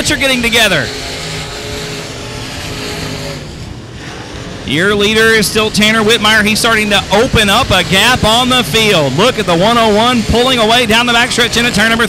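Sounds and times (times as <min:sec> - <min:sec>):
race car engines running: 0:00.0 - 0:12.0.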